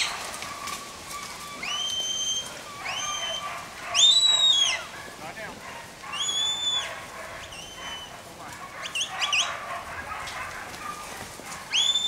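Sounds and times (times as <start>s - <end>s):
person whistling herding commands: 1.1s - 4.9s, 6.1s - 6.9s, 7.5s - 8.1s, 11.7s - 12.0s.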